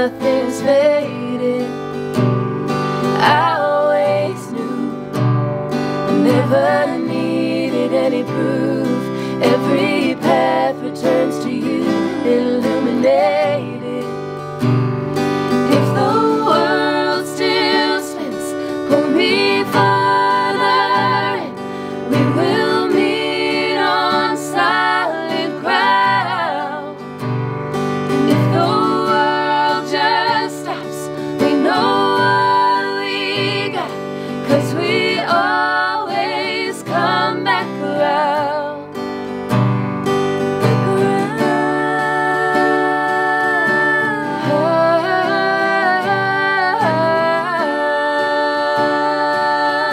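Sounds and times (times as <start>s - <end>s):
women singing in harmony: 0.0s - 2.3s, 3.0s - 14.4s, 15.5s - 27.4s, 28.0s - 39.0s, 40.6s - 49.9s
acoustic guitar strumming: 0.0s - 49.9s.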